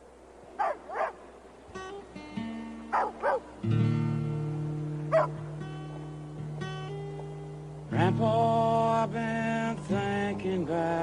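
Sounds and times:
dog barking: 0.6s - 1.2s, 2.9s - 3.4s, 5.1s - 5.4s
guitar notes and chord: 1.7s - 10.0s.

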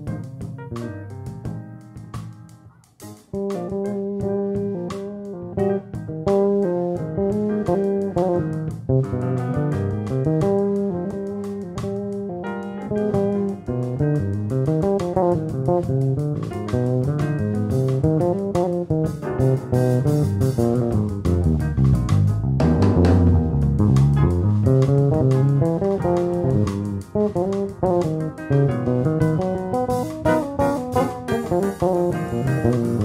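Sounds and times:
electric bass guitar playing: 0.0s - 33.0s.

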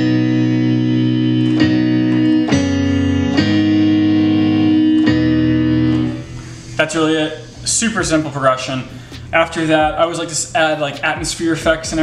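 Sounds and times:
keyboard chords: 0.0s - 12.0s.

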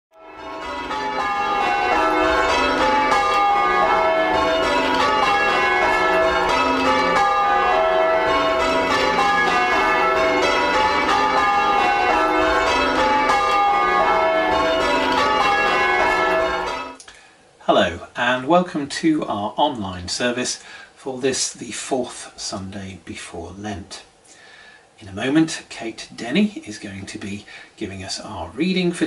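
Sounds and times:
church bells ringing changes: 0.2s - 17.0s.

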